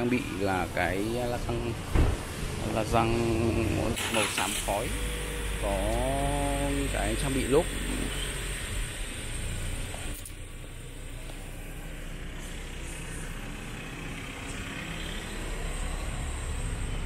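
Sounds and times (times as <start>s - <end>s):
motor vehicle rumble: 0.0s - 17.0s
outdoor background noise: 0.0s - 17.0s.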